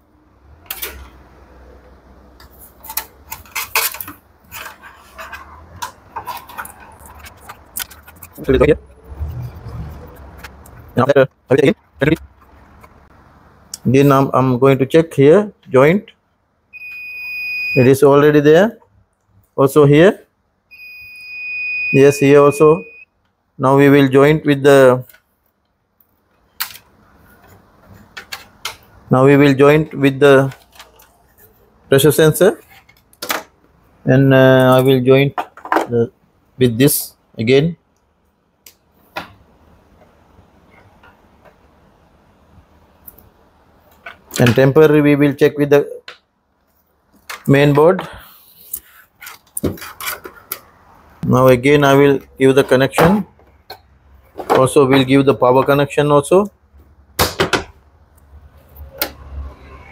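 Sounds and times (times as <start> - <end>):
handling noise: 2.3 - 13.6, 49.0 - 51.2.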